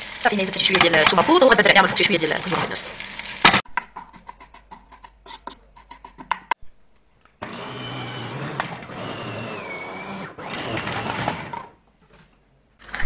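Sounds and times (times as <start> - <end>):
food processor running: 7.4 - 11.8.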